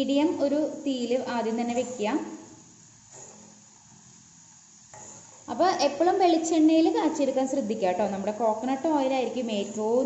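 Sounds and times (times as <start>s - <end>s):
faint sizzling in oil: 0.0s - 10.0s.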